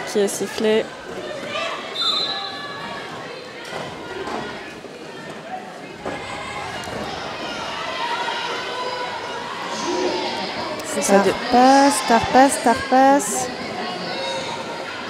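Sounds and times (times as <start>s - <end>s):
voices of players and spectators: 0.0s - 15.0s
referee's whistle: 2.0s - 2.6s.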